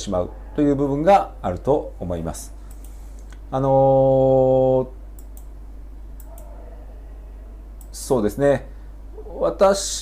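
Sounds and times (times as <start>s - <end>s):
low steady hum: 0.0s - 10.0s
computer mouse clicks: 2.6s - 3.4s, 5.2s - 5.5s, 6.2s - 6.6s.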